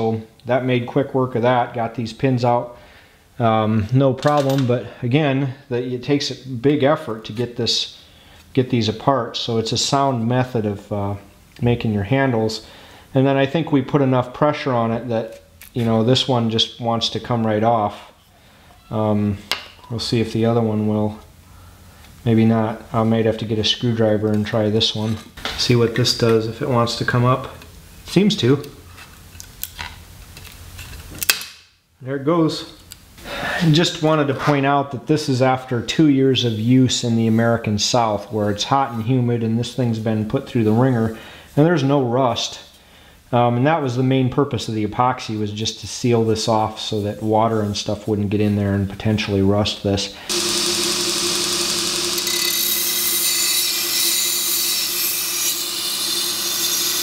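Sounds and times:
belt grinder motor hum: 50.3 - 57.0.

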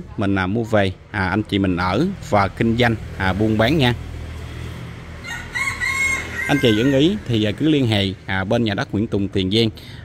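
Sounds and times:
rooster crowing: 5.2 - 7.3.

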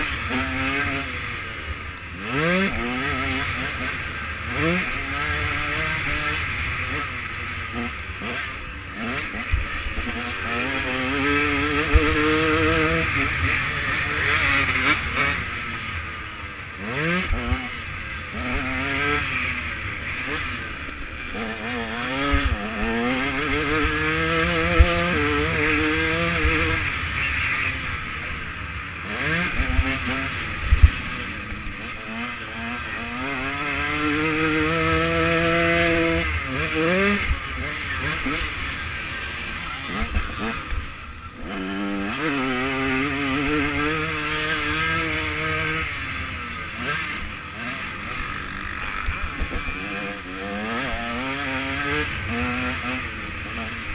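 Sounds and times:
motorbike engine revving: 0.0 - 53.9.

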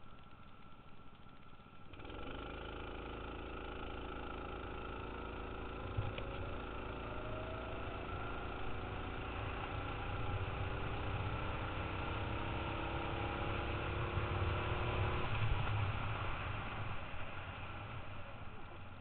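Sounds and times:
small vehicle engine running: 0.0 - 19.0.

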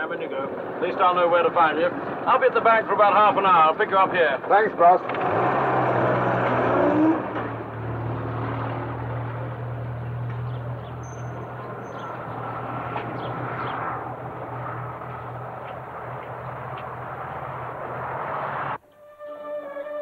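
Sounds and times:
vehicle engine revving: 5.0 - 18.8.

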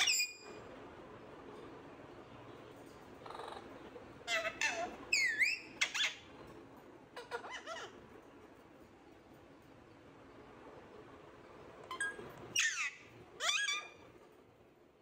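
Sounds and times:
parakeets squawking and chattering: 0.0 - 0.6, 3.1 - 8.5, 11.9 - 14.2.

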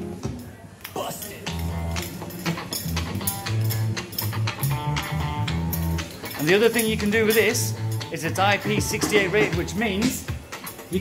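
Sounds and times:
song with bass and drums: 2.9 - 6.2, 6.9 - 10.5.

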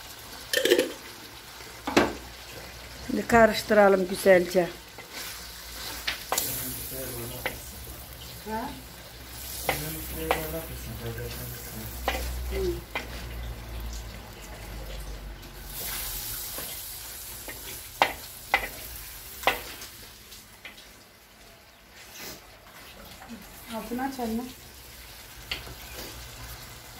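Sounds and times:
meat sizzling in a pan: 0.0 - 26.9
wooden spoon scraping a pan: 4.9 - 7.7.

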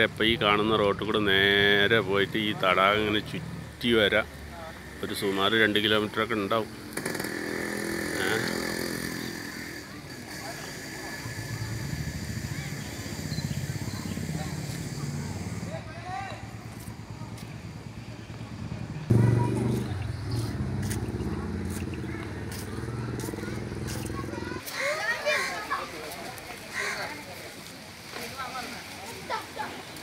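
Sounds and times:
vehicle engine running: 16.5 - 24.6.

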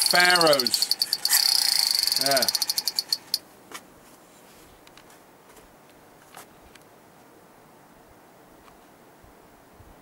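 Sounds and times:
toy pistol rapid clicking: 0.0 - 3.4.

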